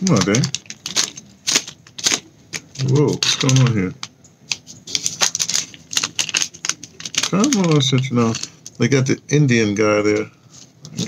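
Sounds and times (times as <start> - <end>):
packet crackling and clicking: 0.0 - 9.1.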